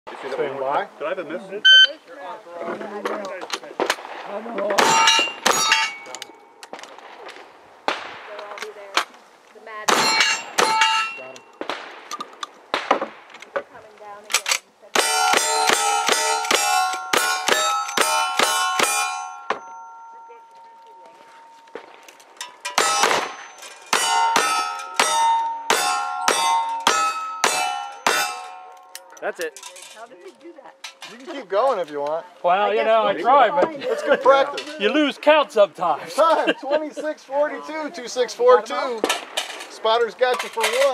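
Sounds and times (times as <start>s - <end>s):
rifle and revolver gunshots: 3.6s - 9.1s, 9.9s - 13.6s, 14.3s - 19.6s, 21.7s - 29.2s
steel plate target clang: 4.7s - 7.1s, 9.9s - 13.3s, 15.0s - 30.1s.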